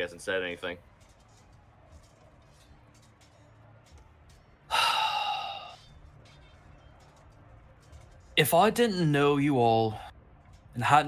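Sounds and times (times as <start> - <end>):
person sighing: 4.7 - 5.8.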